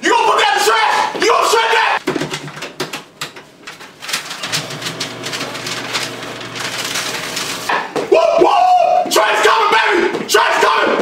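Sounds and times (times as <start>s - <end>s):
paper shredder grinding: 4.0s - 7.7s.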